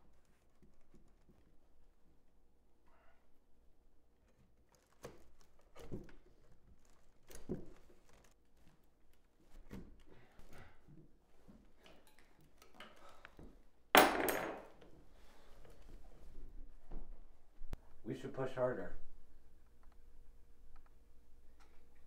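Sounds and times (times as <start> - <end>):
hands working at rope bindings: 0.0 - 2.2, 4.2 - 13.8.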